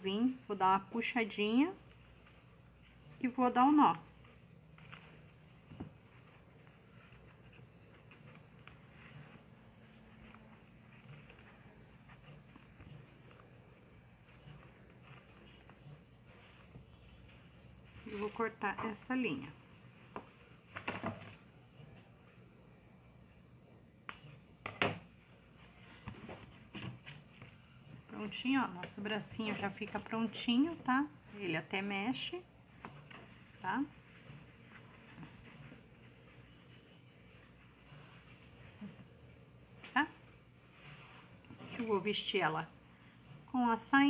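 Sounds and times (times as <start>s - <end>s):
thread and cloth rustling: 0.0s - 22.2s, 24.3s - 44.0s.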